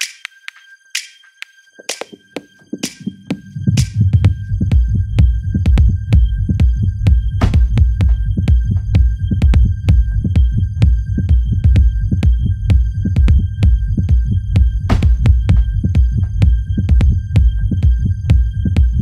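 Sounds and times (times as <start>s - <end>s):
throbbing bass line: 3.7s - 19.0s.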